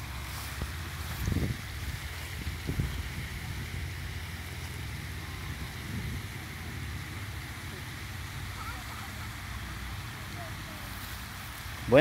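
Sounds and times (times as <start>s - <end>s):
wind buffeting microphone: 0.0s - 8.6s
fountain water cascading: 0.0s - 12.0s.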